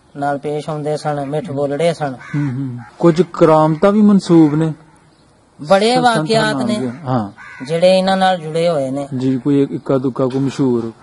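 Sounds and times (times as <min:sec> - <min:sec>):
man narrating: 0:00.2 - 0:04.9, 0:05.6 - 0:11.0.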